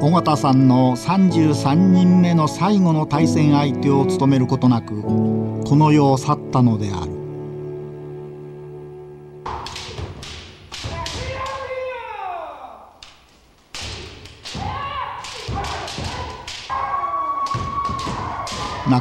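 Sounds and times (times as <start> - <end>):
music: 0.0 - 11.6, 15.4 - 19.0
feet stamping on wooden floor: 9.5 - 11.5
bamboo sword strikes: 9.5 - 11.6, 13.7 - 16.8
people shouting: 10.7 - 12.9, 14.4 - 19.0.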